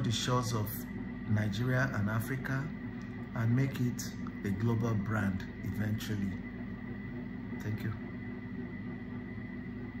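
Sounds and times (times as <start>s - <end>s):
faint high whine: 0.0s - 10.0s
low room hum: 0.0s - 10.0s.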